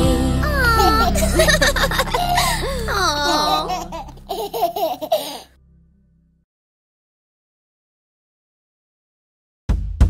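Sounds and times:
cartoon babies laughing: 0.4s - 5.5s.

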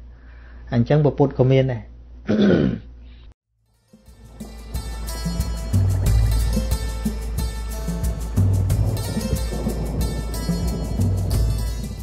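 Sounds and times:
man clearing throat: 2.3s - 2.9s.

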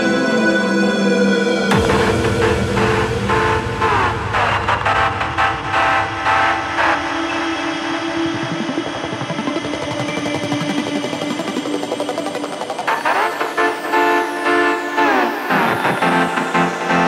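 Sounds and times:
electronic bass music: 1.7s - 17.0s.

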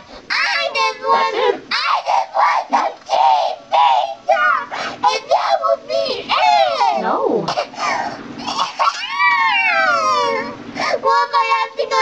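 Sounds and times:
child wailing with pitch-shift chorus: 0.3s - 7.3s, 8.7s - 12.0s.

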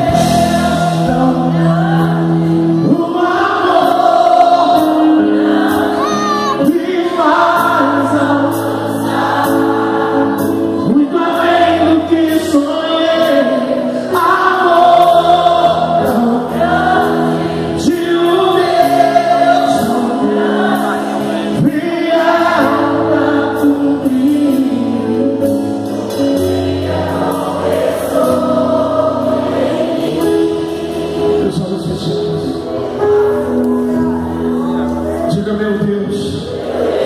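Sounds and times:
voices singing gospel: 0.0s - 33.7s, 34.8s - 37.0s
held keyboard chords: 0.0s - 37.0s.

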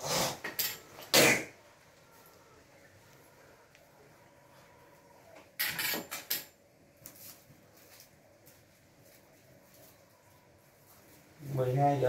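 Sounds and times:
woven sack rustling on tiled floor: 6.9s - 12.0s.

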